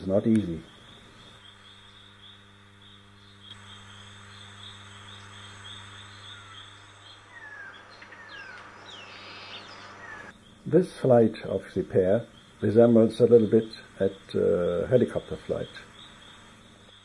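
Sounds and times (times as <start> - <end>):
insect chirping: 0.0 - 17.0
low electrical hum: 0.0 - 17.0.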